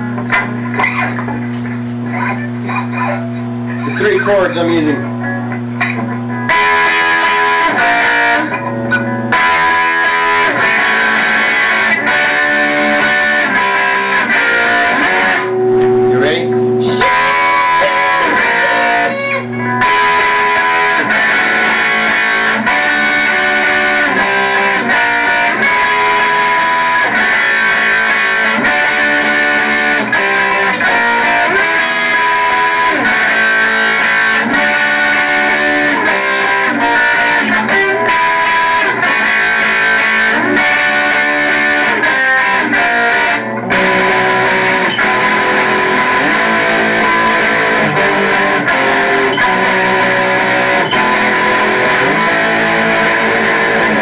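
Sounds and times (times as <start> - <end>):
electric guitar playing chords: 0.0 - 54.0.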